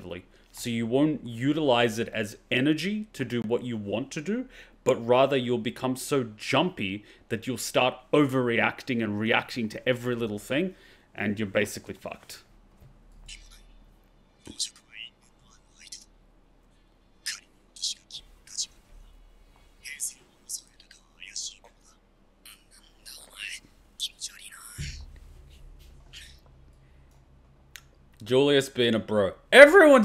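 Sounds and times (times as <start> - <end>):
low steady hum: 0.0 - 30.0
whispery dialogue: 13.2 - 26.6.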